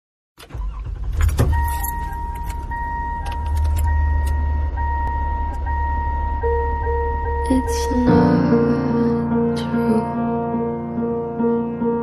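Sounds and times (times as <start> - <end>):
car engine rumble: 0.4 - 10.1
keys jangling and clicking: 1.2 - 4.0
car warning chime: 1.4 - 8.4.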